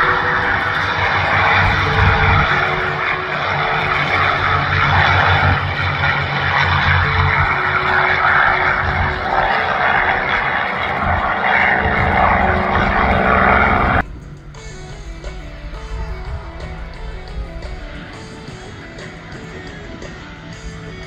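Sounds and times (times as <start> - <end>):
aircraft engines droning: 0.0 - 21.0.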